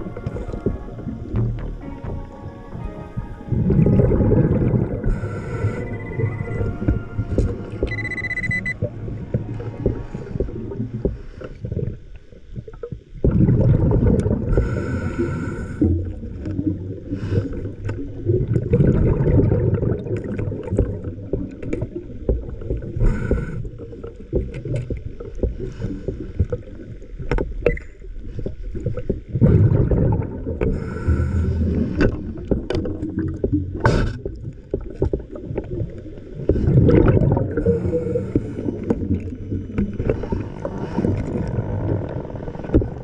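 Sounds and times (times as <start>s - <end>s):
muffled underwater rumble: 0.0s - 43.0s
underwater bubbling: 0.0s - 43.0s.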